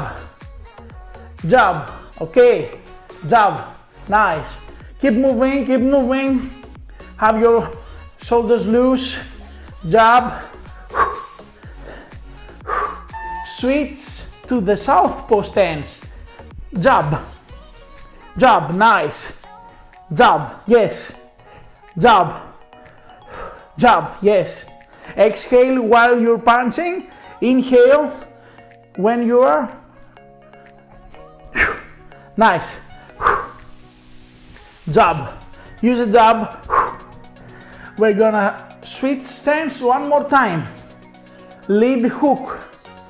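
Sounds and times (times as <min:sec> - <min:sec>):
background music with steady beat: 0:00.0 - 0:43.0
sharp exhale: 0:31.5 - 0:32.3, 0:32.9 - 0:33.8.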